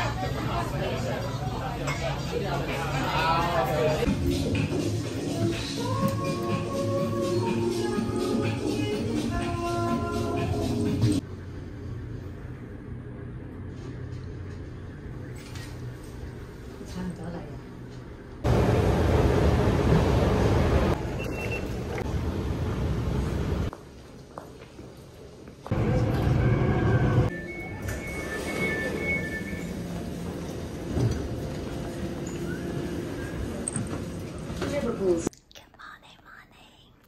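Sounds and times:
rumbling station ambience: 0.0s - 35.3s
train carriage noise: 13.6s - 35.3s
woman whispering softly: 35.3s - 37.0s.

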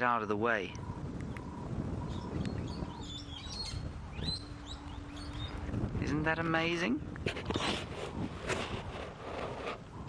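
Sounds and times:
small birds chirping: 0.0s - 5.8s
steady low rumble: 0.7s - 10.0s.

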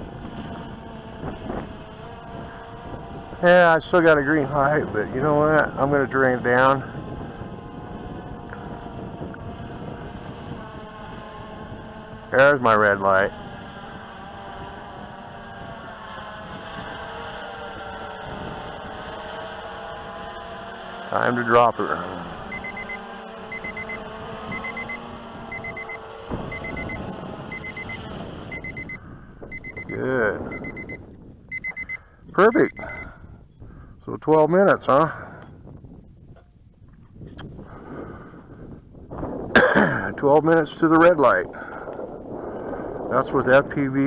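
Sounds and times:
drone motors whirring: 0.0s - 33.7s
quadcopter propellers buzzing: 0.0s - 44.0s
digital timer alarm beeping: 22.3s - 33.1s.

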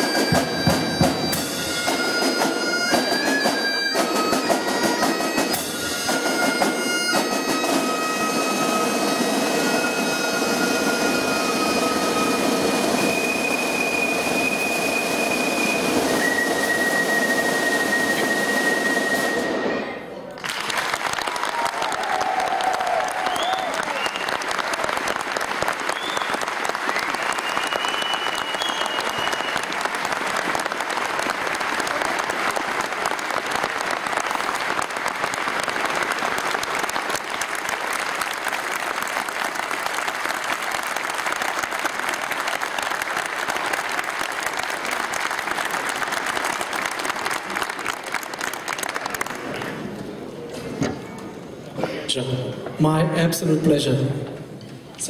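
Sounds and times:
audience applauding: 20.3s - 50.4s
high calls from audience: 21.2s - 25.0s.

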